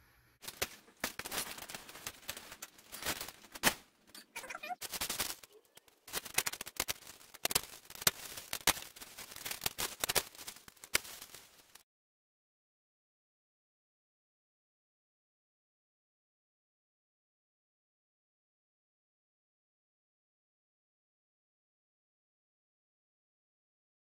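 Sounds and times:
insulation and plastic crinkling: 0:00.4 - 0:11.8.

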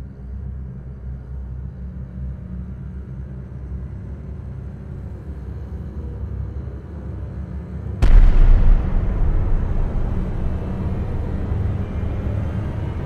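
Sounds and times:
low steady rumble: 0:08.0 - 0:13.0.

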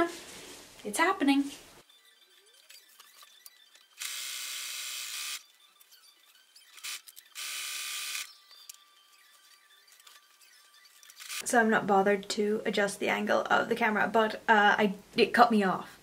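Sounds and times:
sewing machine running: 0:03.9 - 0:05.4, 0:06.7 - 0:08.3.

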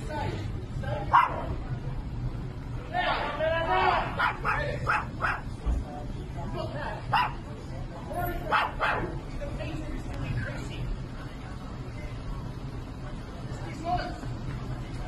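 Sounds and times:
man shouting angrily: 0:02.9 - 0:05.2.

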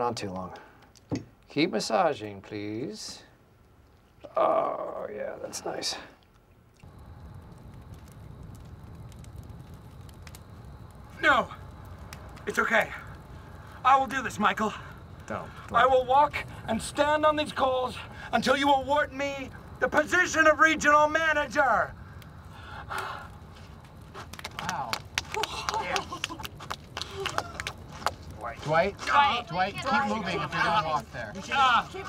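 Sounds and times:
faint background hiss: 0:00.0 - 0:32.0
fire crackling and popping: 0:00.0 - 0:32.0
low steady fire rumble: 0:00.0 - 0:32.0.

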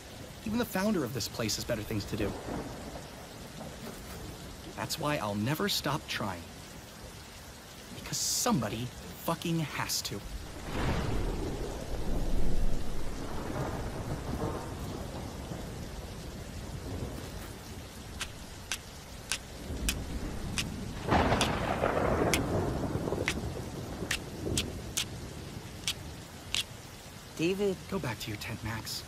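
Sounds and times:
heavy rain: 0:00.0 - 0:29.0
thunder rolling: 0:01.7 - 0:04.8, 0:10.2 - 0:25.6
sharp ticks: 0:18.2 - 0:21.6, 0:22.3 - 0:22.5.

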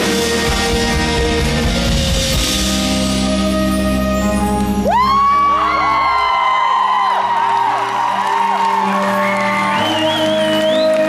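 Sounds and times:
live rock band: 0:00.0 - 0:06.1
crowd whooping and screaming: 0:04.7 - 0:11.0.

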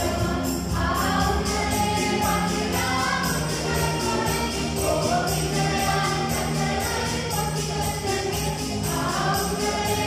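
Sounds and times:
instrumental backing with steady beat: 0:00.0 - 0:10.0
mixed choir singing a carol: 0:00.0 - 0:10.0.

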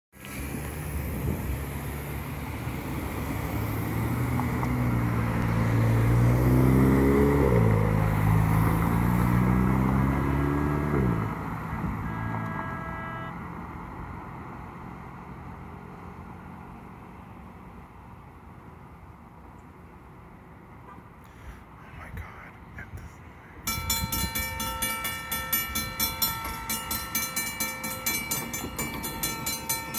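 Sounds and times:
passing road traffic: 0:00.2 - 0:29.9
car accelerating: 0:00.3 - 0:15.8
brief high steady tone: 0:12.0 - 0:13.4.

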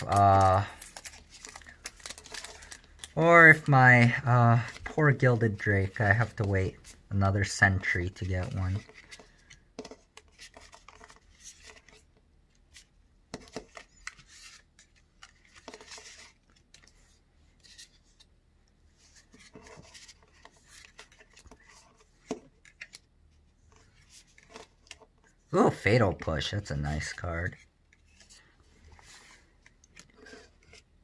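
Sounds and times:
cards sliding and flicking: 0:12.7 - 0:18.3, 0:27.0 - 0:30.9.

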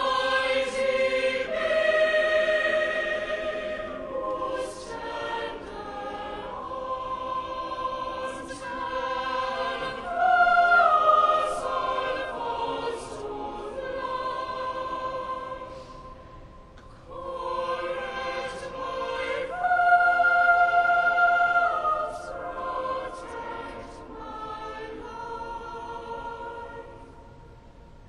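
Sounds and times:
choir singing in a large church: 0:00.0 - 0:28.0.

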